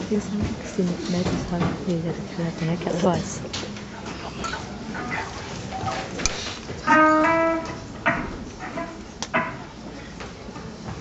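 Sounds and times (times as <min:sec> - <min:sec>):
electric guitar notes: 0:06.8 - 0:09.8
guitar string plucks: 0:06.9 - 0:09.7.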